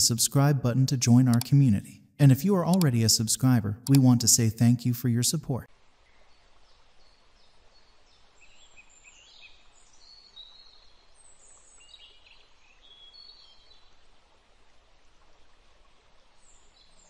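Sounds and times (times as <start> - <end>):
low steady hiss: 0.0 - 17.0.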